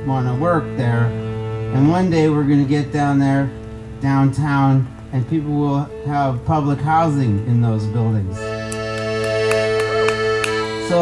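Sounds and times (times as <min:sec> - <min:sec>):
accordion sustained chord: 0:00.0 - 0:11.0.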